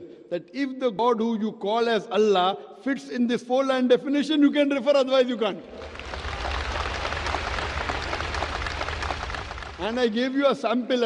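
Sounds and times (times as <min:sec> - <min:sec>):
audience applauding: 0:05.7 - 0:10.4.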